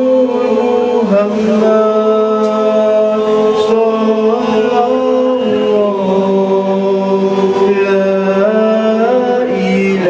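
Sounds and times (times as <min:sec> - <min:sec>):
male voices chanting in unison: 0:00.0 - 0:10.0.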